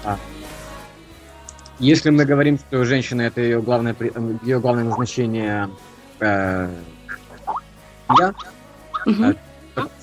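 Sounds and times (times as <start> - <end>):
person speaking haltingly: 8.1 - 8.4.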